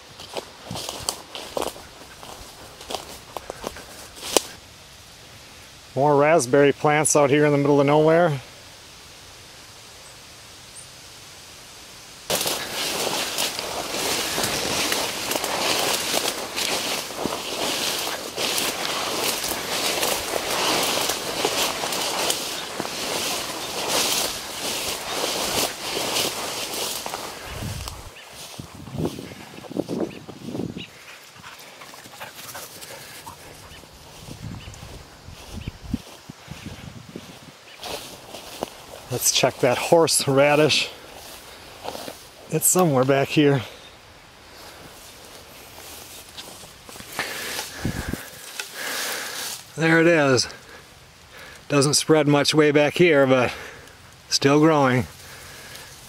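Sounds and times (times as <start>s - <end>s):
footsteps: 0.0s - 4.6s, 12.3s - 43.8s, 44.5s - 51.8s
vegetation brushing and crackling: 0.0s - 4.6s, 12.3s - 56.0s.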